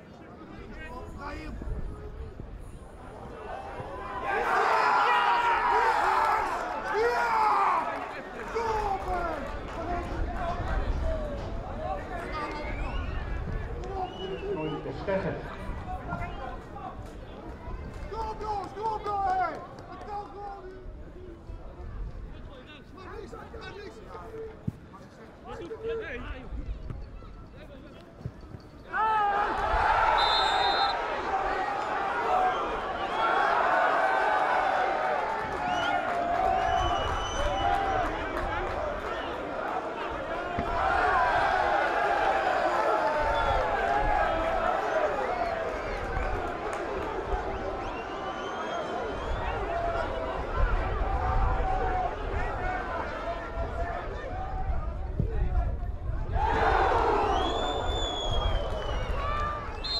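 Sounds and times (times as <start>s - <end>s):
crowd shouting and calling: 3.0s - 20.7s, 28.8s - 59.9s.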